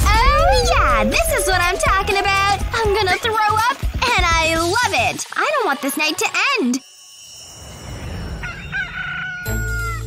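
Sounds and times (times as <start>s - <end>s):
rooster crowing: 8.4s - 10.0s.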